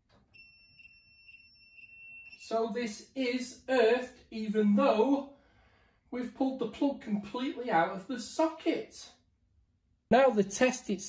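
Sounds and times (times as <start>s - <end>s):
high-pitched continuity beep: 0.4s - 2.4s.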